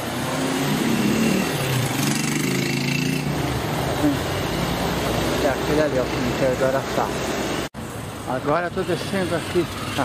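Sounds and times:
car engine passing: 0:00.0 - 0:07.6.

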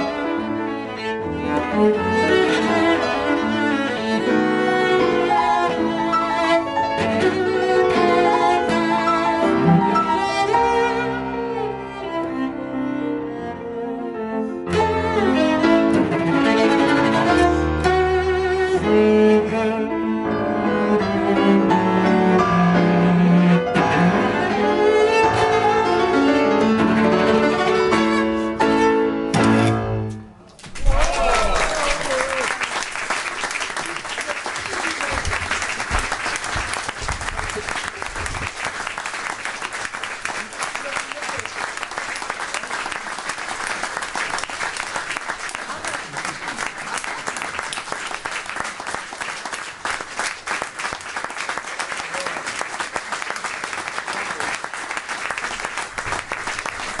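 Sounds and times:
audience applauding: 0:30.7 - 0:57.0.

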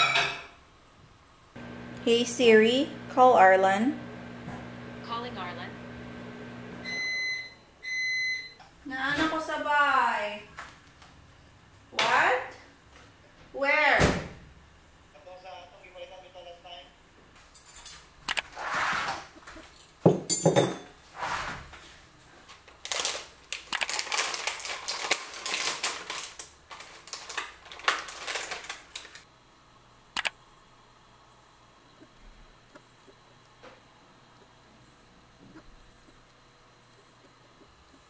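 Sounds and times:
plastic packet crinkling: 0:22.7 - 0:29.2.

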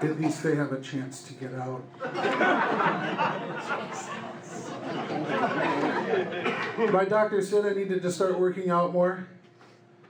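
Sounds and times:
scattered laughter: 0:02.0 - 0:06.9
audience murmuring and chattering: 0:02.0 - 0:07.0.

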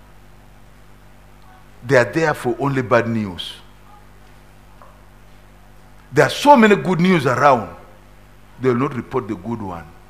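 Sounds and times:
low steady hum: 0:00.0 - 0:10.0
man speaking: 0:01.8 - 0:03.7, 0:06.1 - 0:07.9, 0:08.6 - 0:10.0.

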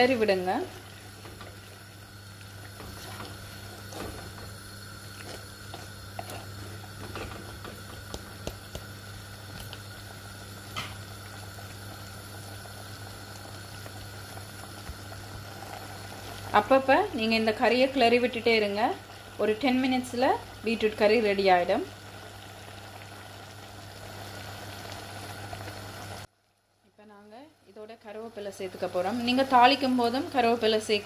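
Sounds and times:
curry simmering and bubbling in pot: 0:00.0 - 0:26.9.

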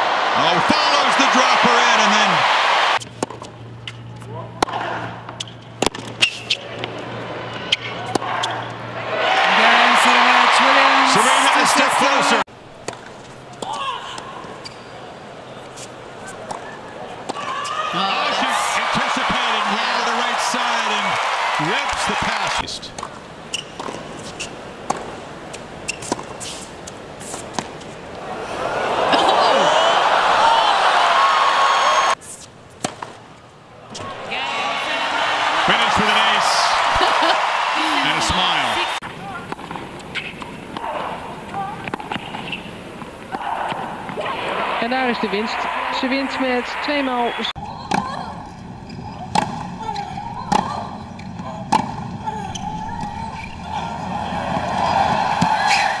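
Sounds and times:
crowd cheering and applauding: 0:00.0 - 0:03.0, 0:09.0 - 0:12.5, 0:17.8 - 0:22.7, 0:28.2 - 0:32.2, 0:34.2 - 0:39.0, 0:53.6 - 0:56.0
racket striking tennis ball: 0:05.8 - 0:06.6, 0:22.9 - 0:25.2, 0:25.9 - 0:27.9, 0:32.8 - 0:33.2, 0:49.3 - 0:49.8, 0:51.3 - 0:52.2.

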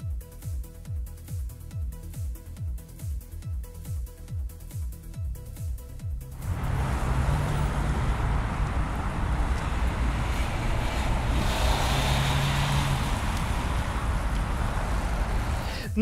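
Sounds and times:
car and tyre noise: 0:06.2 - 0:16.0
vehicle engine drone: 0:06.2 - 0:16.0.

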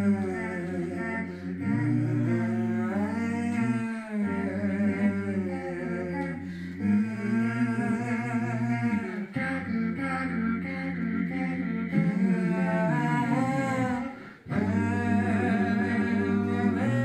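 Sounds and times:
hummed and sung voices: 0:00.0 - 0:17.0
low vocal drone: 0:00.0 - 0:17.0.

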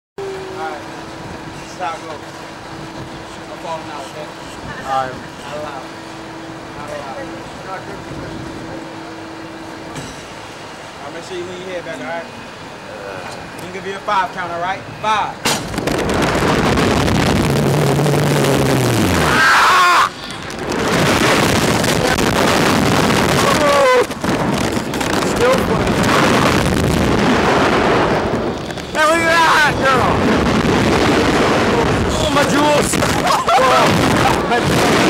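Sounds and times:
wind rushing over microphone: 0:06.5 - 0:08.9, 0:15.5 - 0:35.0
riders yelling: 0:19.2 - 0:20.4, 0:23.3 - 0:24.2, 0:28.9 - 0:30.2, 0:32.1 - 0:34.7.

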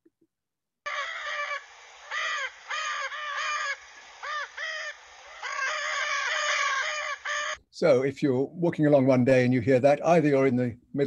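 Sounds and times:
macaw calls: 0:00.9 - 0:07.6.

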